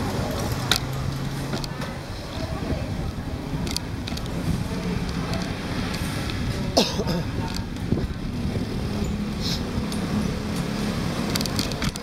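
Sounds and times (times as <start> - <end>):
small motorbike engines running: 0.0 - 12.0
street traffic: 0.0 - 12.0.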